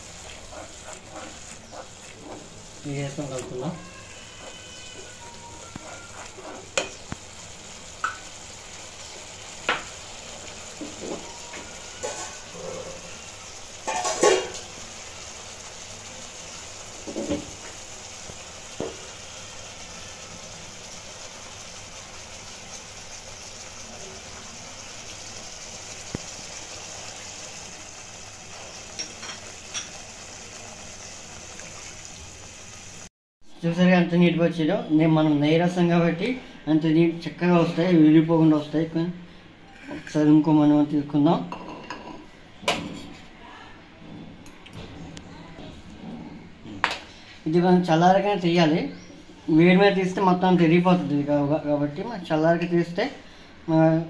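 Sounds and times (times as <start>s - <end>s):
gravy sizzling in a pan: 0.0s - 33.1s, 46.7s - 53.7s
spatula knocking and scraping pan: 0.2s - 2.5s.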